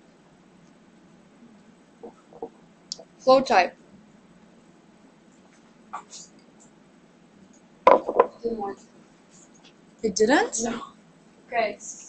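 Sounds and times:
sharp knocks: 7.9 - 8.4.

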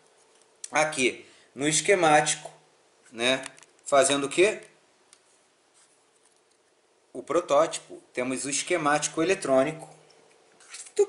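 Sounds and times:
faint room hiss: 0.0 - 11.0
soft rustles: 5.2 - 6.7.

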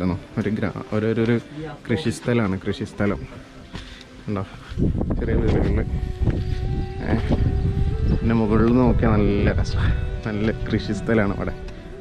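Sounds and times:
wind buffeting microphone: 4.6 - 12.0.

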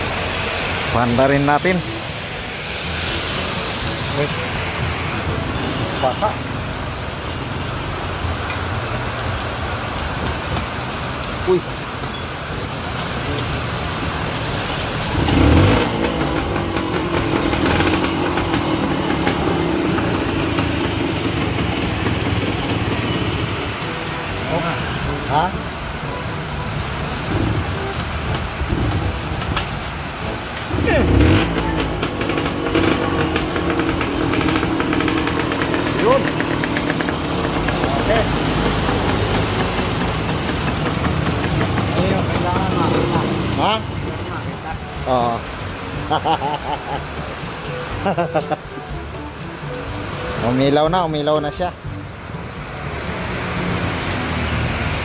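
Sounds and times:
motor vehicle engines running: 0.0 - 55.0
rain hiss: 0.0 - 55.0.

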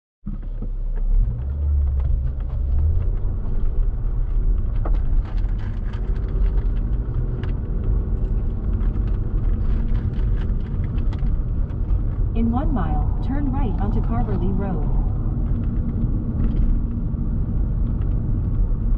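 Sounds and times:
car engine and road rumble: 0.3 - 18.9.

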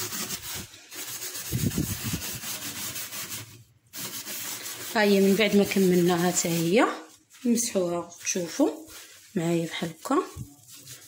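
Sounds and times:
scouring pad scrubbing metal: 0.0 - 11.0.

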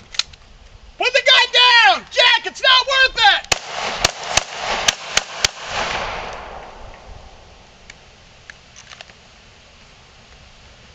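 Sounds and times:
pistol shots: 3.5 - 7.4.

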